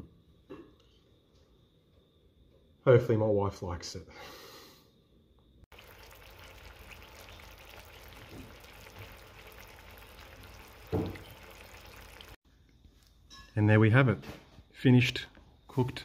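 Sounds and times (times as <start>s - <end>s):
sauce sizzling and bubbling in pan: 5.7s - 12.4s.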